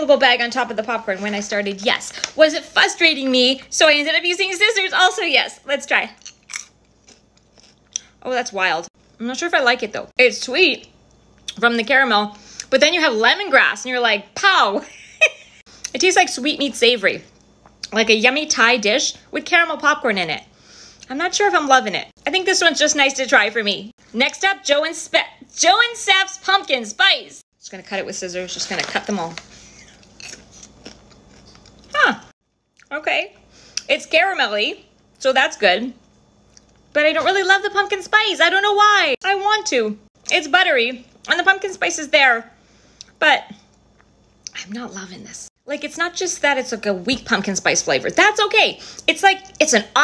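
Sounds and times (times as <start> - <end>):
person crunching popcorn: 6.2 - 8.1, 28.6 - 32.0.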